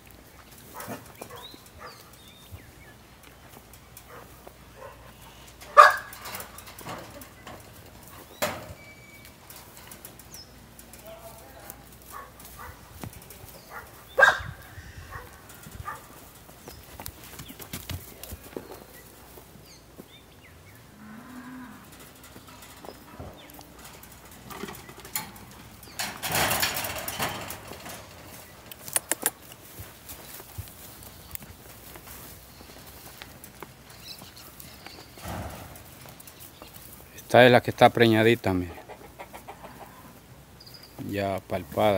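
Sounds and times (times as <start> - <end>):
knocks and rustling in straw: 0.0 - 20.2, 21.1 - 37.4
faint low donkey call: 38.7 - 40.3.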